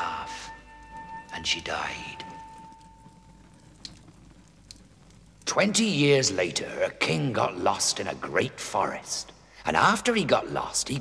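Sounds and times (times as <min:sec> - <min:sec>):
held music note: 0:00.0 - 0:03.5
hearth fire crackling: 0:00.0 - 0:11.0.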